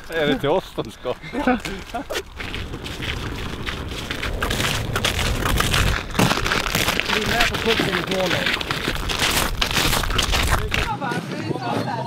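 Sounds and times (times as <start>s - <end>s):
boots crunching on ice: 1.1s - 11.0s
steady low rumble: 1.2s - 10.9s.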